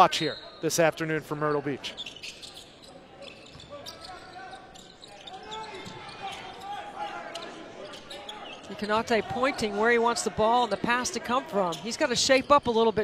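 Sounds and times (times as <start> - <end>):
murmur of crowd voices: 0.0 - 13.0.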